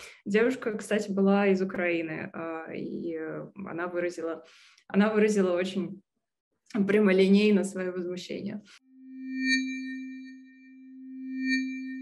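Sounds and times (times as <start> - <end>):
low electronic tone: 8.8 - 12.0
high bell-like shimmer: 8.9 - 12.0.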